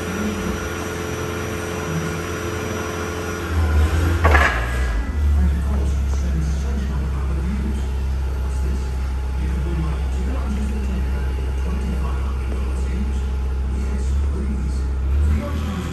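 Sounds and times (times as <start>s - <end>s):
forklift engine humming: 0.0s - 15.9s.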